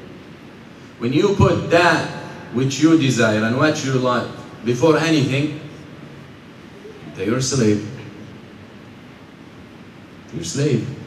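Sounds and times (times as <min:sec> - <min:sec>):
steady room noise hiss: 0:00.0 - 0:11.0.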